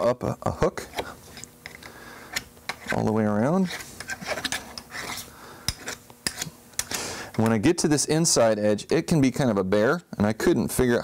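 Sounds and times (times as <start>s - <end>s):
metal scraping on metal: 2.3s - 6.5s.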